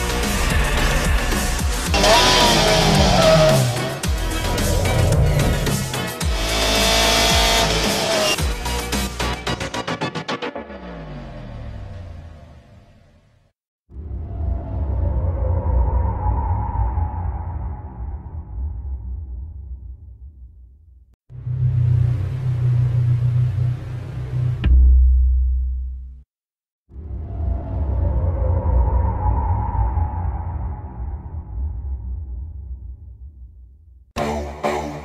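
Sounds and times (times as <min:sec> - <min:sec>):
race car engine at high revs: 0:01.8 - 0:08.4.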